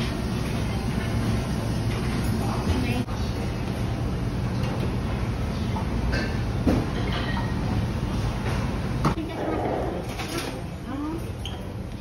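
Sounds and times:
dining room rumble: 0:00.0 - 0:12.0.

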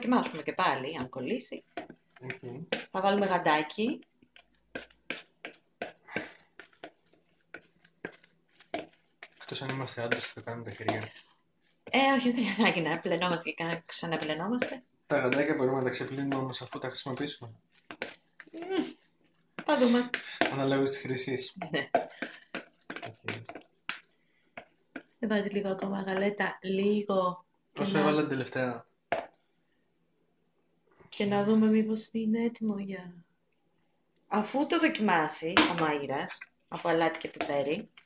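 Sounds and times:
sharp knocks and squelches: 0:00.0 - 0:11.2, 0:11.8 - 0:20.9, 0:21.6 - 0:26.5
spoon stirring mixture in bowl: 0:00.0 - 0:26.6, 0:34.9 - 0:38.0.

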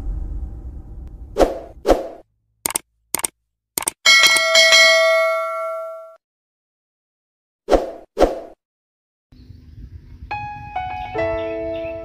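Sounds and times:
low rumble: 0:00.0 - 0:02.2
sharp clicks: 0:02.6 - 0:04.5
bell-like ding: 0:04.1 - 0:06.2.

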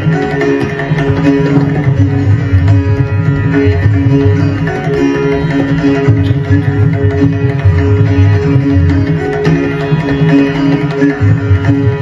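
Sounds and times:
sitar playing: 0:00.0 - 0:12.0
tabla drum strokes: 0:00.0 - 0:12.0.

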